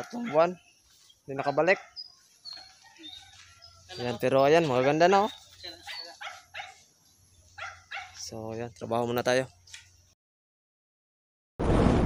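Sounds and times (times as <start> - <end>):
dog barking faintly: 0.0 - 0.6, 1.3 - 2.0, 4.6 - 6.8, 7.6 - 8.3.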